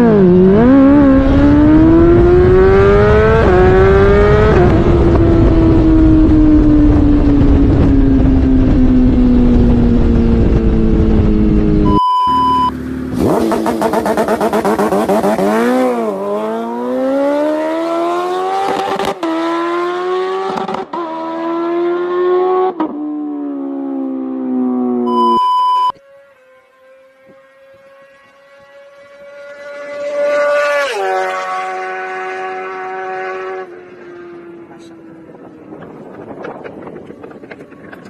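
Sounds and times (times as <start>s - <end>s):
motorcycle passing at speed: 0.0s - 11.9s, 12.5s - 25.1s, 26.0s - 38.0s
motorcycle accelerating hard: 0.0s - 25.2s, 26.0s - 38.0s
steady beep: 11.9s - 12.8s, 25.1s - 26.0s.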